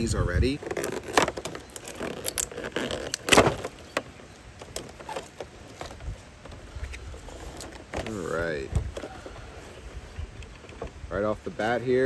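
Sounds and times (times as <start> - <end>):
packaging rustling: 0.5 - 8.2.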